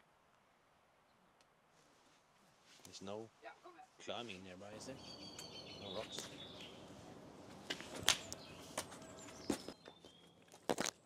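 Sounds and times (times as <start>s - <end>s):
faint birdsong: 0.4s - 1.7s, 2.9s - 10.7s.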